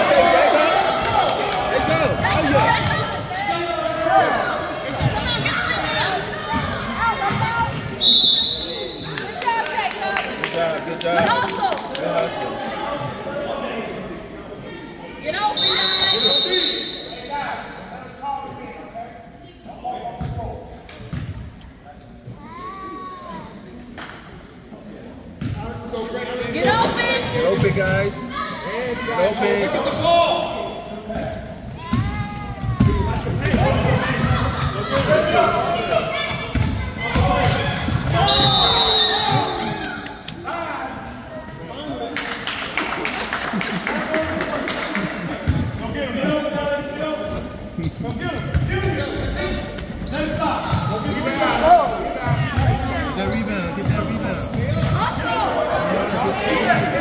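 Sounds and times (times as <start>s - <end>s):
referee's whistle blast: 15.5s - 17.3s, 38.1s - 39.6s.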